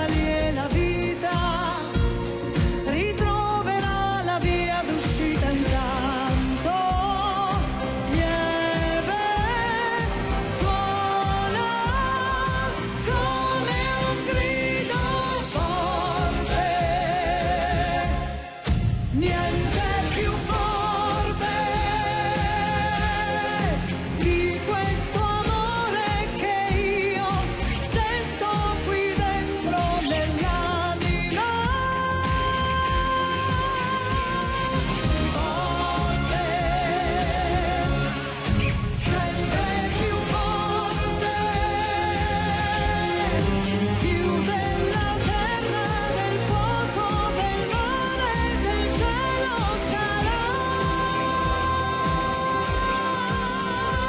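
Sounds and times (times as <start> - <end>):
band backing with steady beat: 0.0 - 54.0
woman singing into a microphone: 0.0 - 54.0.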